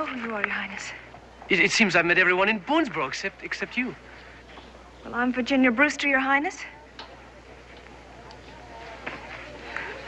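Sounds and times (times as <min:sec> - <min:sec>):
low steady hum: 0:00.0 - 0:10.0
people talking in background: 0:03.3 - 0:10.0.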